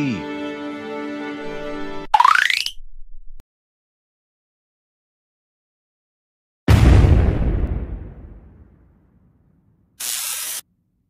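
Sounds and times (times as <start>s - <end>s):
sharp burst of hiss: 10.0s - 10.6s.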